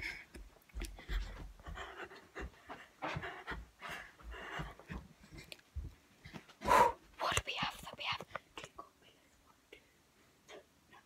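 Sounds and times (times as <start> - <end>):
girl whispering and breathing: 6.6 - 11.0.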